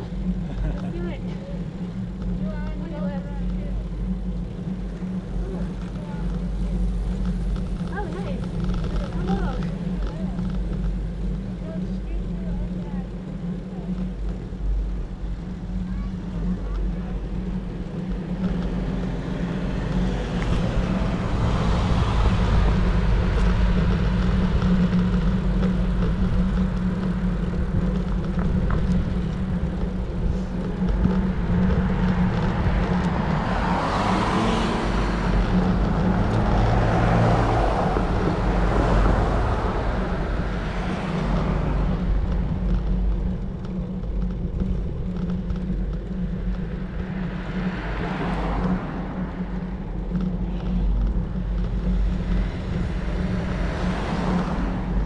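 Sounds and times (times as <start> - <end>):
tyre and road noise: 0.0 - 55.0
wind rumble on microphone: 0.0 - 55.0
car passing by: 18.7 - 24.6, 31.6 - 42.4, 46.8 - 50.8, 52.0 - 55.0.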